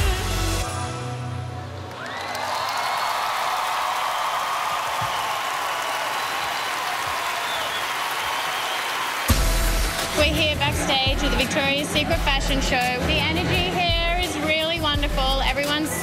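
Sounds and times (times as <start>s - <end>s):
pop music with strong beat: 0.0s - 1.2s, 9.3s - 16.0s
audience cheering and applauding: 1.8s - 12.9s.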